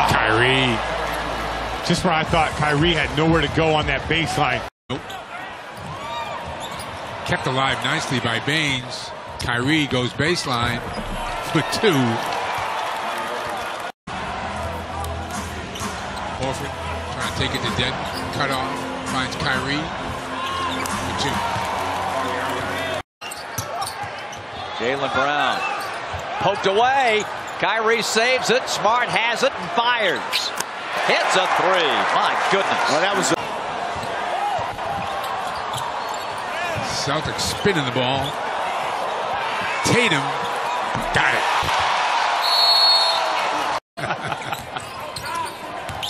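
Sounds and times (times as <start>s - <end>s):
arena crowd noise: 0.0s - 46.0s
background music: 14.3s - 23.0s.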